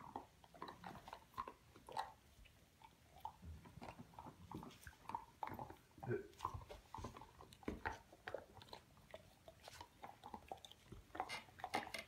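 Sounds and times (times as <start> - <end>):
dogs gnawing chew bones: 0.0 - 12.0.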